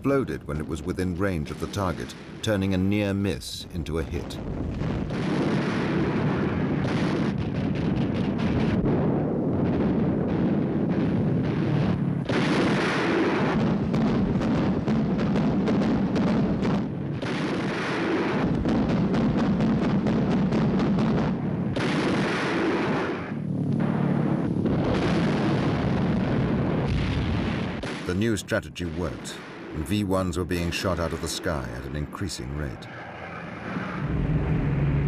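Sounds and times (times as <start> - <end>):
anti-aircraft guns firing: 0.1 - 35.0.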